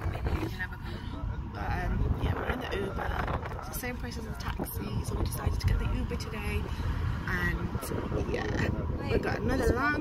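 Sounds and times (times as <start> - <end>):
car road and engine rumble: 0.0 - 10.0
voices: 0.0 - 10.0.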